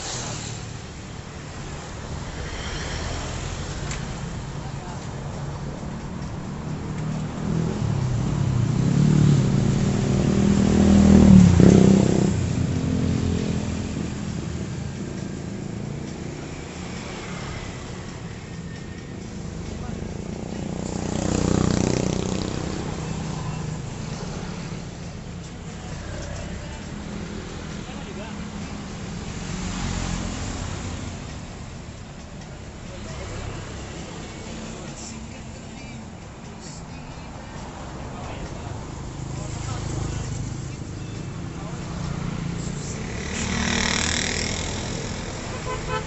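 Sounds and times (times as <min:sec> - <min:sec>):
cars driving past: 0:00.0 - 0:46.0
motorcycles driving past: 0:01.5 - 0:04.5, 0:06.7 - 0:25.2, 0:41.6 - 0:46.0.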